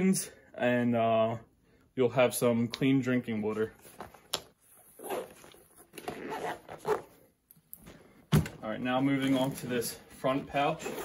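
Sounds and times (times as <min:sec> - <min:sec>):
zipper rasping shut: 0:04.8 - 0:07.2, 0:10.8 - 0:11.0
zipper click: 0:05.0 - 0:07.1.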